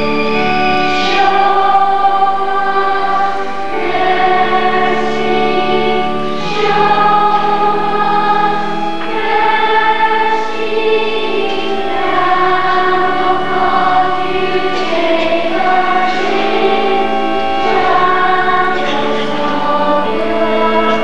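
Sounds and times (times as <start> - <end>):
church choir singing a hymn: 0.0 - 21.0.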